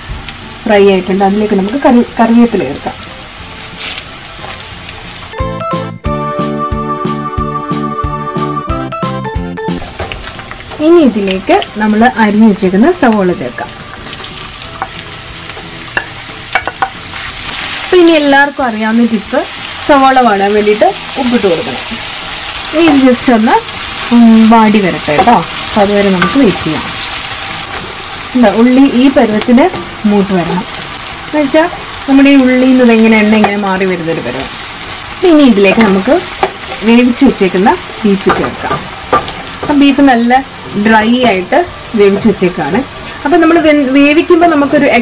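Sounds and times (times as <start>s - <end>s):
onions sizzling in hot oil: 0.0s - 5.4s, 9.7s - 45.0s.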